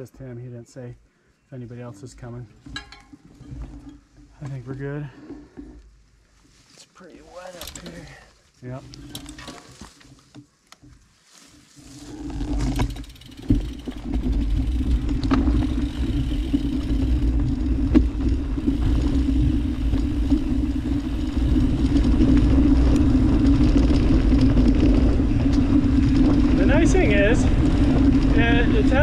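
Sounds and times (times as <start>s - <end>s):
wind and tyre rumble: 8.7s - 29.0s
low hum: 11.9s - 29.0s
short knocks from trail: 12.4s - 20.8s.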